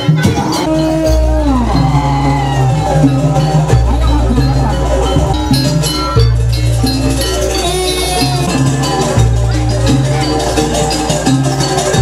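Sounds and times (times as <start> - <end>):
metallic bell-like percussion: 0.0 - 12.0.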